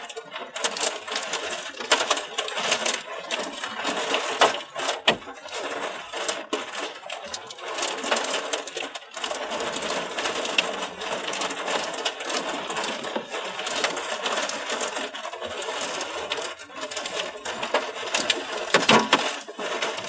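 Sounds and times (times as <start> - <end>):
hail clattering on car roof: 0.0 - 20.0.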